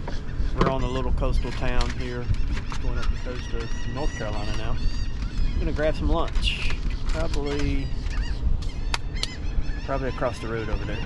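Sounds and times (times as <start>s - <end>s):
birds honking: 0.0s - 11.0s
steady low rumble: 0.0s - 11.0s.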